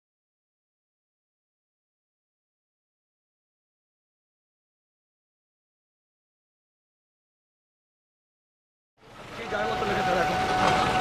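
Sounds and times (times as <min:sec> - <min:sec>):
steady background noise: 0:09.0 - 0:11.0
people's voices: 0:09.2 - 0:11.0.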